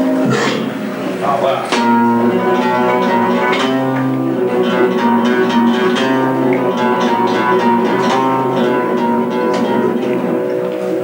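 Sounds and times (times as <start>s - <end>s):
flamenco guitar playing: 0.0s - 11.0s.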